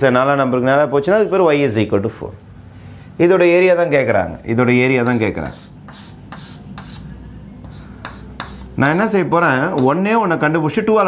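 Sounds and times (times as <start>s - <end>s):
chalk scratching on blackboard: 5.0s - 10.0s.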